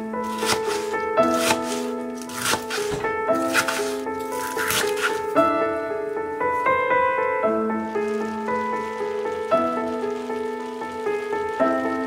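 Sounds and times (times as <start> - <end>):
background music with melody: 0.0 - 12.0
knife chopping on plastic board: 0.3 - 5.2.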